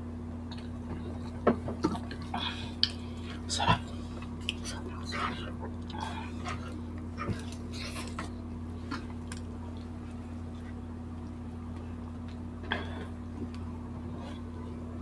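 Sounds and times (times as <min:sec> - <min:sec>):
steady low hum: 0:00.0 - 0:15.0
chewing: 0:00.5 - 0:11.4
lip smacks: 0:02.0 - 0:03.0, 0:04.2 - 0:08.3.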